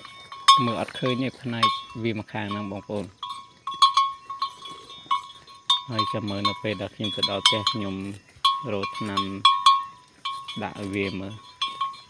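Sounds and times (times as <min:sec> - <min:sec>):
steady high ringing tone: 0:00.0 - 0:12.0
man talking: 0:00.5 - 0:03.2, 0:05.8 - 0:09.5, 0:10.5 - 0:11.5.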